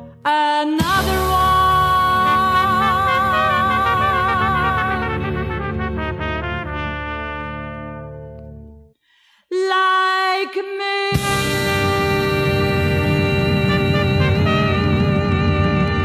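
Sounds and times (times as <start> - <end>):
jazz band holding a chord: 1.0 - 7.9, 11.2 - 16.0
horn note with vibrato: 1.2 - 7.8, 11.2 - 16.0.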